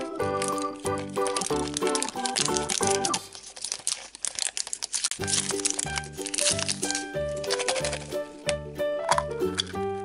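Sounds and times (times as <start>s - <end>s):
plastic wrapper crinkling: 0.0s - 9.7s.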